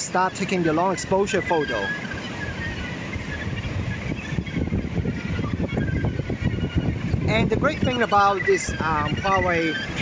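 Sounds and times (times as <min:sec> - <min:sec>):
wind gusting on microphone: 0:00.0 - 0:10.0.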